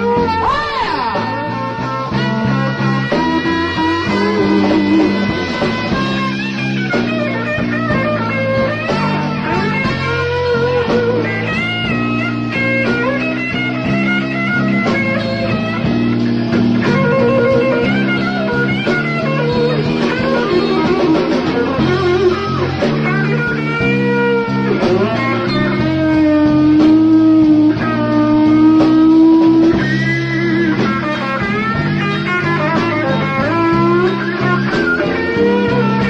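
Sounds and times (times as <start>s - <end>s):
bass line: 0.0s - 36.0s
electric lead guitar soloing: 0.0s - 36.0s
rhythm guitar: 0.0s - 36.0s.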